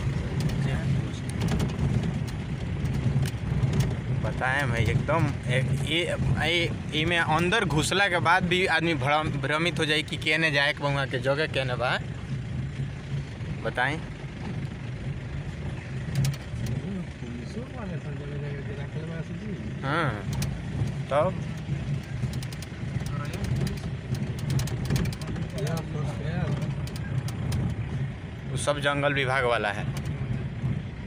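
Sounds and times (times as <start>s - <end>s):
car engine running at low speed: 0.0s - 31.0s
light ticks: 20.3s - 25.9s, 26.5s - 27.8s.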